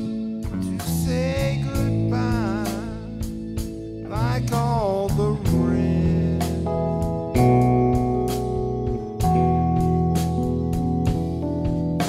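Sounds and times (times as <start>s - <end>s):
guitar bass and keyboard chords: 0.0s - 12.0s
sliding lead melody: 0.0s - 12.0s.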